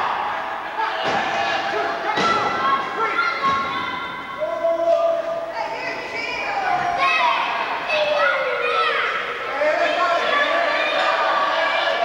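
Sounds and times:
crowd shouting: 0.0 - 4.9, 5.6 - 12.0.

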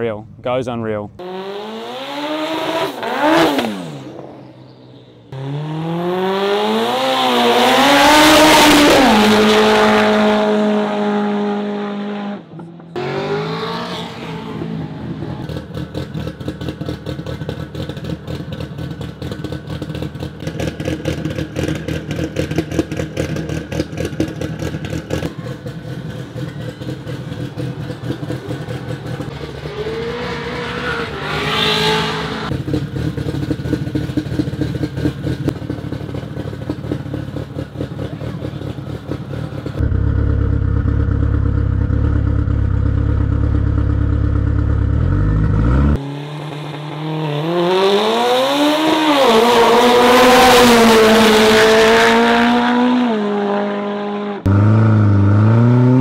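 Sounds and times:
car engine pulsing exhaust: 0.0 - 53.5.

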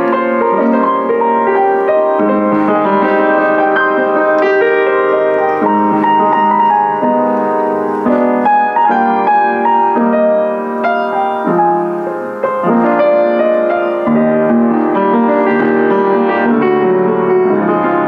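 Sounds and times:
upright piano chords and melody: 0.0 - 18.0.

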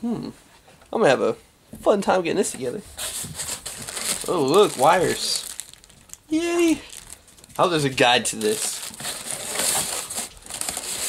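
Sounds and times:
plastic packaging crinkling: 3.0 - 11.0.

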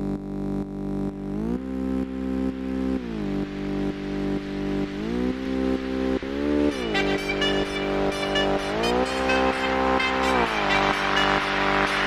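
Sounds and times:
motorcycle engine revving: 0.8 - 12.0
music beat: 2.4 - 12.0.

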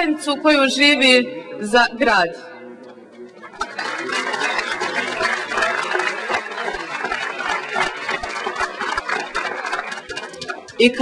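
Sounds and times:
audience applauding: 3.5 - 10.9.

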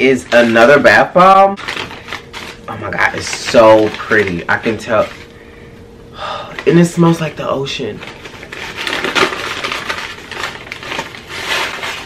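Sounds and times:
crinkly packaging crackling: 0.0 - 5.4, 6.4 - 12.0.

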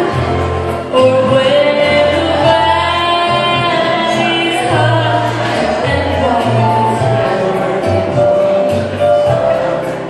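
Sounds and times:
woman singing into microphone: 0.0 - 9.3
electric keyboard: 0.0 - 10.0
low bass line: 0.0 - 10.0.

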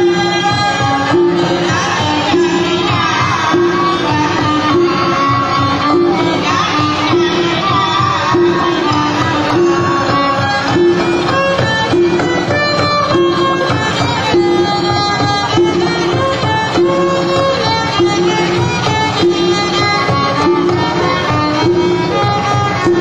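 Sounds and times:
fiddle melody: 0.0 - 23.0.

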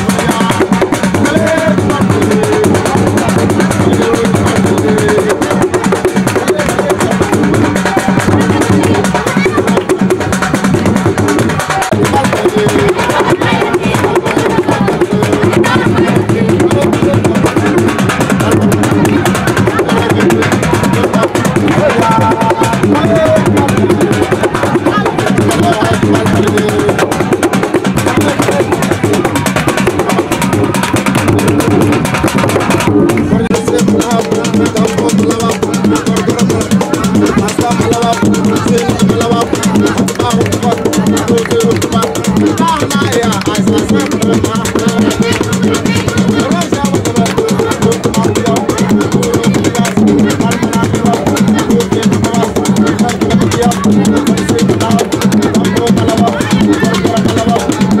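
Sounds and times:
drum-led dance music with voices: 0.0 - 58.0.

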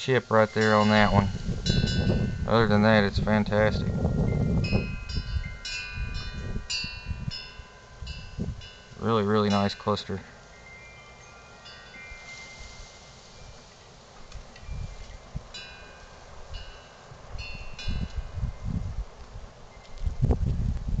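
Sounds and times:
wind rumbling on microphone: 0.0 - 9.0, 11.7 - 21.0
wind chimes ringing: 0.1 - 18.8.

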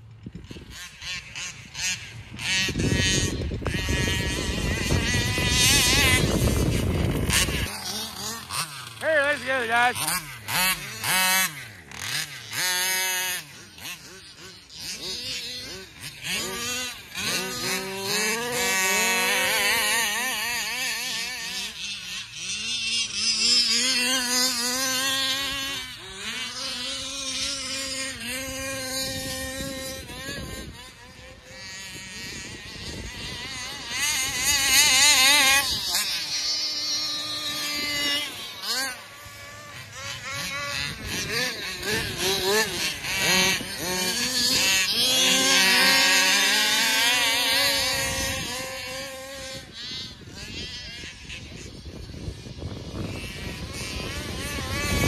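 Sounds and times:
rc car engines running hard: 0.0 - 55.0.

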